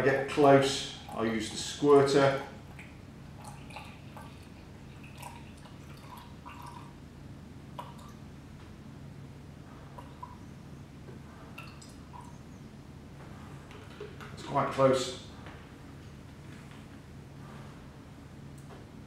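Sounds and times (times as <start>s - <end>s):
steady low hum: 0.0s - 19.0s
water dripping and splashing: 2.0s - 6.9s, 7.8s - 8.2s, 11.6s - 12.3s.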